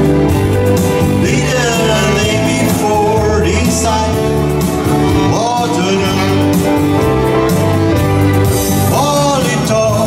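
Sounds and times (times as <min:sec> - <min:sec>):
saxophone melody: 0:00.0 - 0:09.4
arranger keyboard backing: 0:00.0 - 0:10.0.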